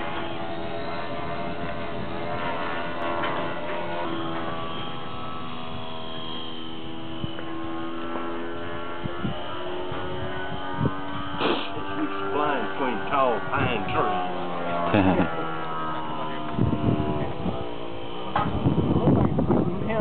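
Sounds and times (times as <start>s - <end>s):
model airplane motor whining: 0.0s - 20.0s.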